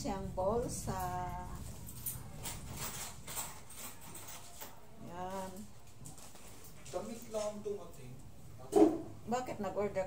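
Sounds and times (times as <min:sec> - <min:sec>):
plastic bag and clothing rustling: 0:00.9 - 0:07.9.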